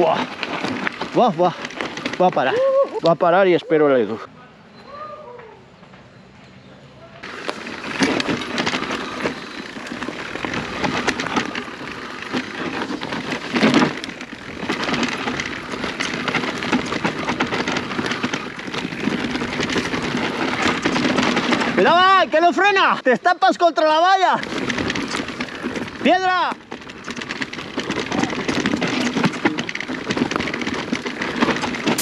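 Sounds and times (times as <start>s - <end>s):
bike tyres on loose stone: 0.0s - 4.2s, 7.2s - 32.0s.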